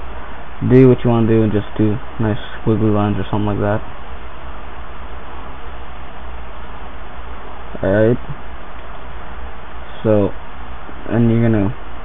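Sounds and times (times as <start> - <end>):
low hum: 0.0 - 12.0
steady hiss: 0.0 - 12.0.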